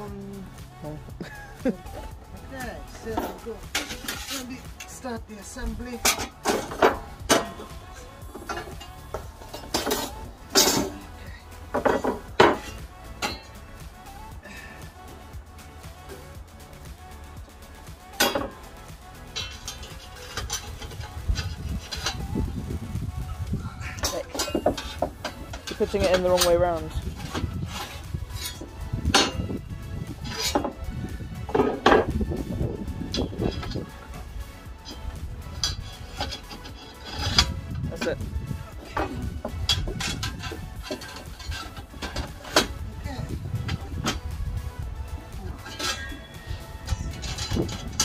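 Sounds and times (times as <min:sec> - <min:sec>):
metal plates clanking: 0:02.9 - 0:13.6, 0:18.1 - 0:18.7, 0:19.3 - 0:22.5, 0:23.7 - 0:44.4, 0:45.1 - 0:48.0
metallic knocks: 0:11.7 - 0:13.5, 0:24.0 - 0:29.5.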